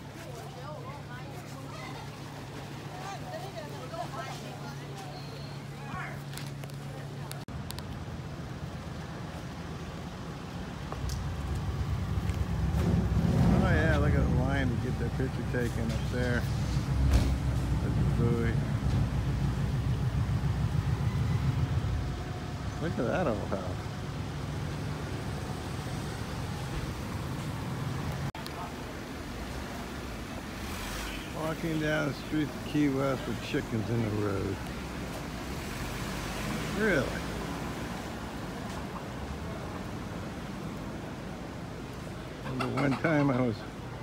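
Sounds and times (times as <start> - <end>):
people talking: 0.0 - 7.5, 13.5 - 16.5, 17.8 - 18.6, 22.7 - 23.9, 31.4 - 34.6, 36.7 - 37.3, 42.5 - 43.8
low hum of traffic: 0.0 - 44.0
low street rumble: 0.0 - 44.0.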